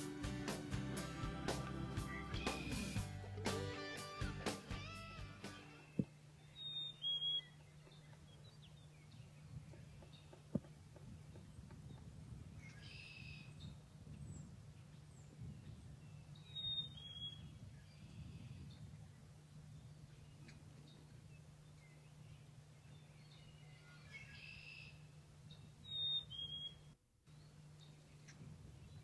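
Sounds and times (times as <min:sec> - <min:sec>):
birds chirping two-note calls: 0:01.0 - 0:07.6.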